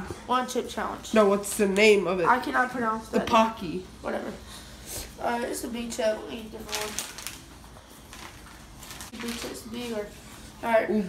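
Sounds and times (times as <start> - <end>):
faint rustling and crackling: 6.3 - 10.6.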